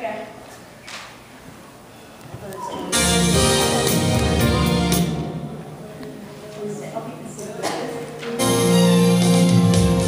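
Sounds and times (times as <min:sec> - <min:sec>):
keyboard accompaniment: 0:02.9 - 0:05.8, 0:08.1 - 0:10.0.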